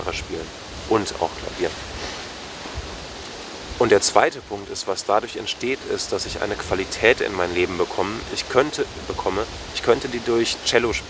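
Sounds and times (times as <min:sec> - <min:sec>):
man's voice: 0:00.0 - 0:01.8, 0:03.8 - 0:11.0
forest rushing background noise: 0:00.0 - 0:11.0.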